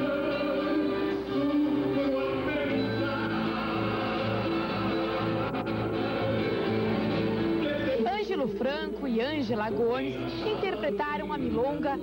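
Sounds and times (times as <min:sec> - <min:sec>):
guitar: 0:00.0 - 0:12.0
live band playing: 0:00.0 - 0:12.0.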